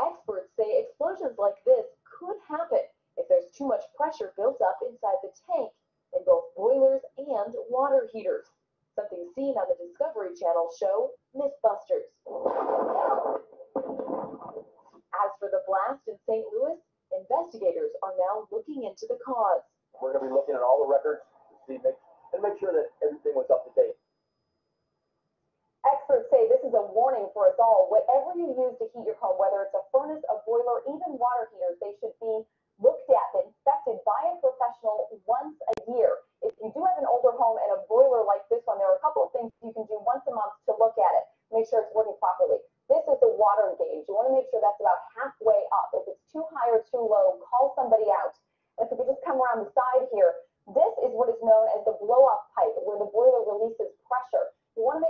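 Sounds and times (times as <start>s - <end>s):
news reporter talking: 0.0s - 8.4s, 9.0s - 23.9s, 25.8s - 55.0s
woman speaking: 0.0s - 8.4s, 9.0s - 13.4s, 15.0s - 19.6s, 20.2s - 21.0s, 25.8s - 55.0s.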